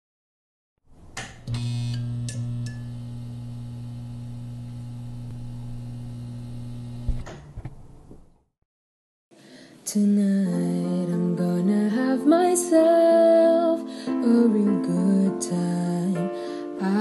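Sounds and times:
click: 0:01.2 - 0:03.0, 0:05.2 - 0:05.4
thump: 0:07.1 - 0:08.3.

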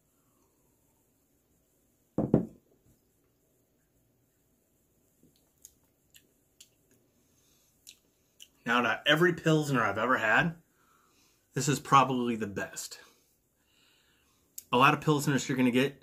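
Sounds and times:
faint lip smacks: 0:07.8 - 0:08.6.

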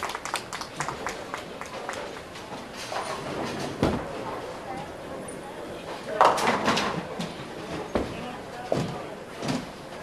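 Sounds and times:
clacks and knocks from lanes: 0:00.0 - 0:04.4.

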